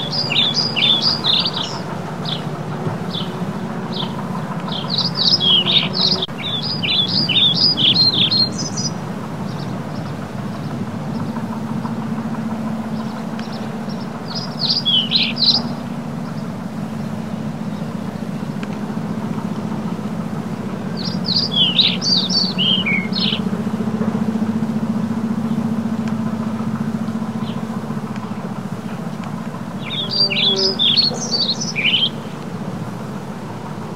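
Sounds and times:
small birds chirping: 0.0s - 33.9s
steady low hum: 0.0s - 33.9s.

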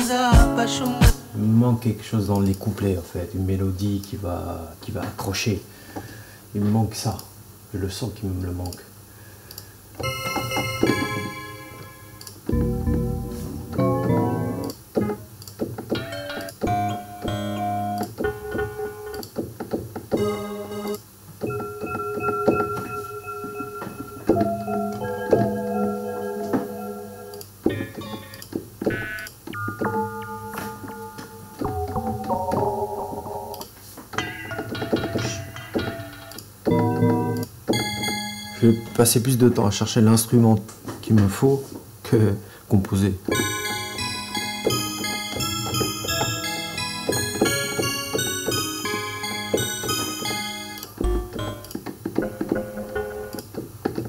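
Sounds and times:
synth bell notes and chords: 10.0s - 14.7s, 21.5s - 27.3s, 29.6s - 33.4s, 43.4s - 51.7s.

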